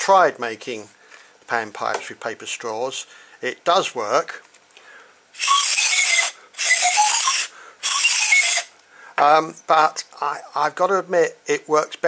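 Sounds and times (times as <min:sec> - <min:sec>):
paper straw pan pipes blown: 0:05.4 - 0:08.8.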